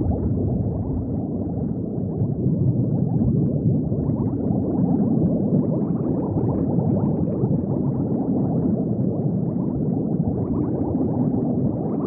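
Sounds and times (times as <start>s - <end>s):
underwater bubbling: 0.0s - 4.8s.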